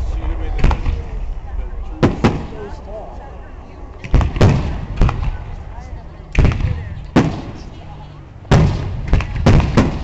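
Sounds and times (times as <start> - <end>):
fireworks bangs: 2.0 - 2.6, 4.1 - 5.5, 6.4 - 7.7, 8.5 - 10.0.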